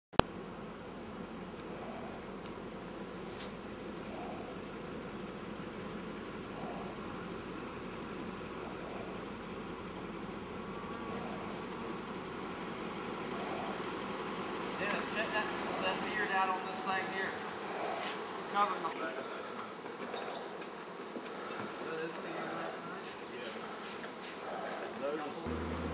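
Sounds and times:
honeybees buzzing: 0.2s - 25.9s.

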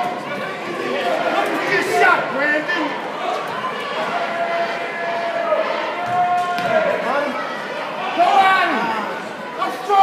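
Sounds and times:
spectators chattering: 0.0s - 10.0s.

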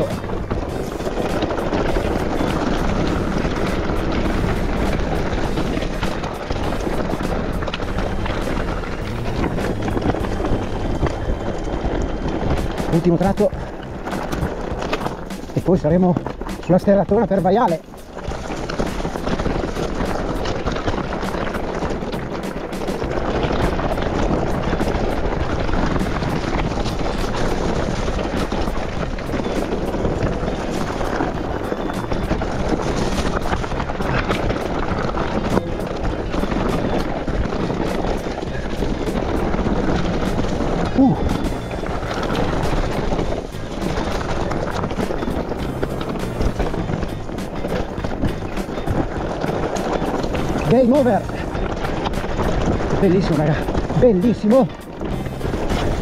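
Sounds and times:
bike frame rattle: 0.0s - 56.0s
bike tyre rumble on dirt: 0.0s - 56.0s
wind on microphone: 0.0s - 56.0s.

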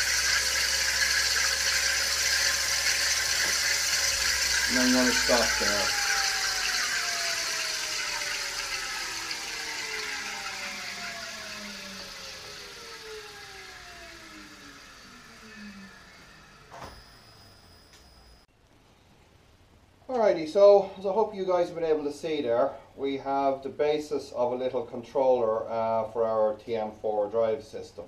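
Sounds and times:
electric motor whine spinning down: 0.0s - 18.5s.

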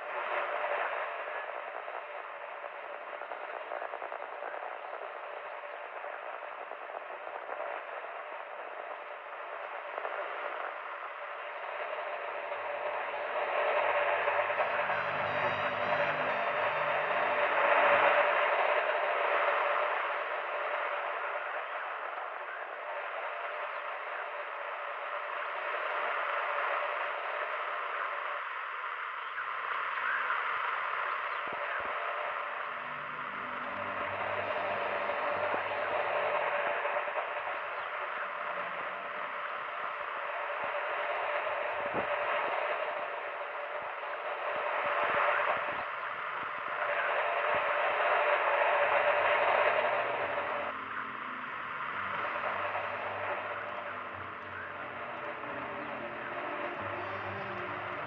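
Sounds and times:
faint steady whistle tone: 0.0s - 58.0s
radio static hiss: 0.0s - 58.0s.

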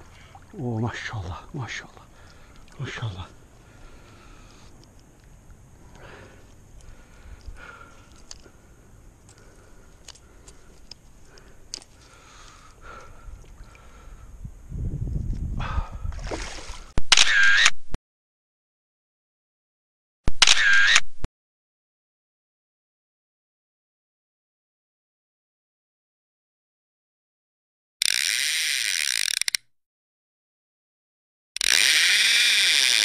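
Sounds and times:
water splashing: 16.2s - 17.0s
sharp click: 17.0s - 17.8s, 20.3s - 21.2s, 28.0s - 29.7s
camera shutter sound effect: 17.1s - 17.8s, 20.3s - 21.2s
rapid mechanical ratcheting: 28.0s - 29.6s, 31.6s - 33.0s.

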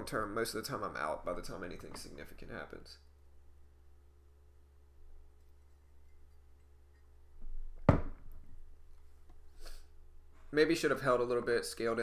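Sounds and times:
low hum with thin tones: 0.0s - 12.0s.

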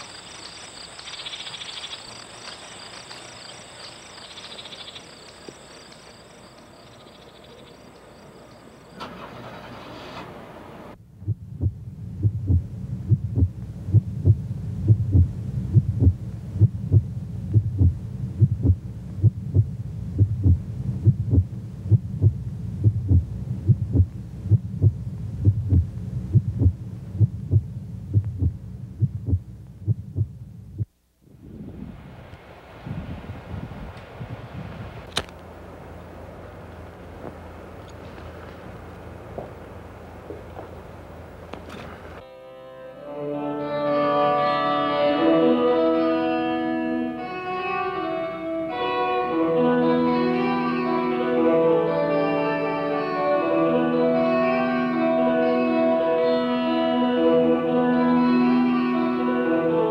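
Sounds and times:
crickets chirping: 0.0s - 9.8s
soft hiss: 0.0s - 11.0s, 11.7s - 42.3s
low throbbing pulse: 11.1s - 30.9s.

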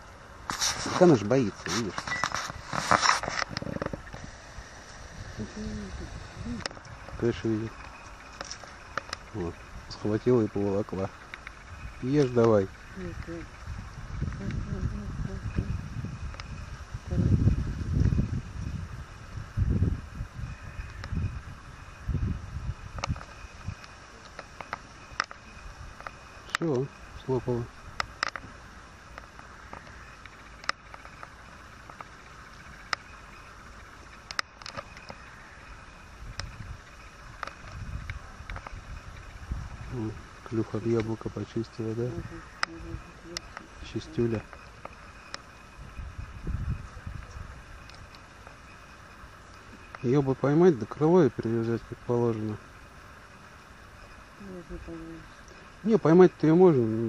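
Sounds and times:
outdoor background hiss: 0.0s - 57.0s.

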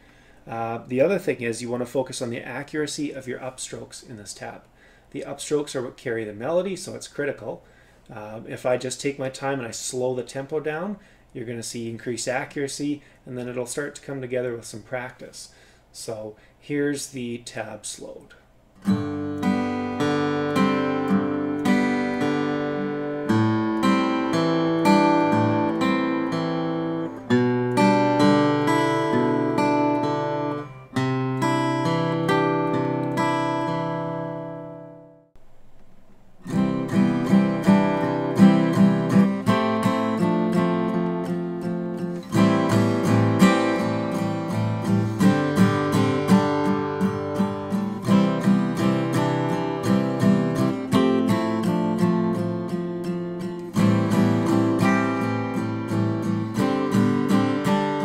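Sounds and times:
acoustic guitar playing: 18.8s - 58.0s.

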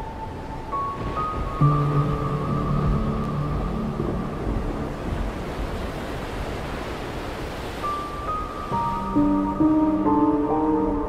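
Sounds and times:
ambient music with held notes: 0.0s - 11.0s
stormy sea waves rushing: 0.0s - 11.0s.

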